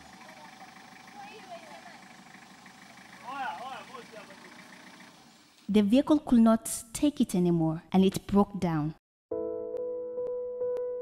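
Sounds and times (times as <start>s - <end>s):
people calling out: 0.0s - 2.2s, 3.0s - 4.8s.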